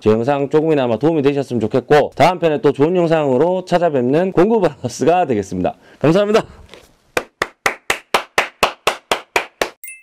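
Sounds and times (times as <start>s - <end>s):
person clapping hands: 7.2s - 9.8s.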